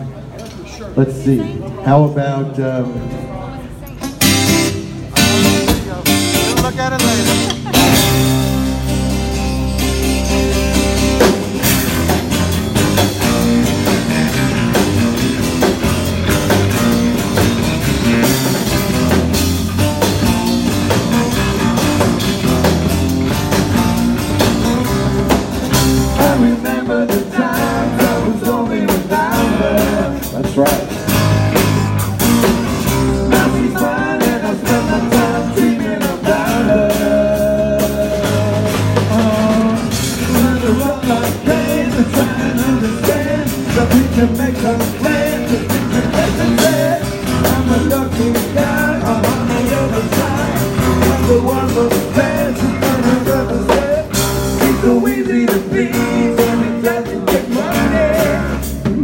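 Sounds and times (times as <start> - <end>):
acoustic rock band playing: 0.0 - 59.0
man singing lead vocal: 24.4 - 31.3, 33.2 - 59.0.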